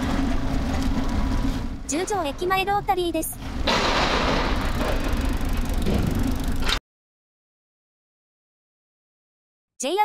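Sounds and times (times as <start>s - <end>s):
bicycle road rumble: 0.0s - 6.8s.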